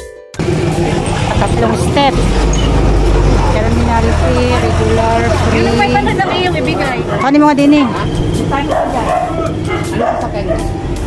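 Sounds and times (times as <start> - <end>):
vehicle engine idling: 0.4 - 11.0
people talking: 0.8 - 2.6, 3.3 - 10.8.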